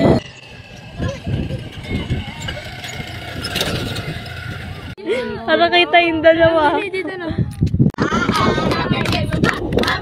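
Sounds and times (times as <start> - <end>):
small motorcycle engine rumbling: 0.0 - 5.4.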